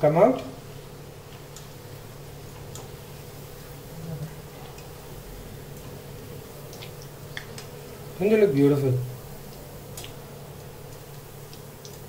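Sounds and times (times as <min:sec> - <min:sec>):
food deep-frying in oil: 0:00.0 - 0:12.0
low steady hum: 0:00.0 - 0:12.0.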